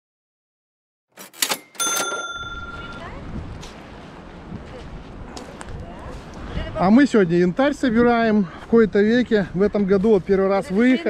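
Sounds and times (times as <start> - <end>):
bright bell-like ding: 1.6 - 3.2.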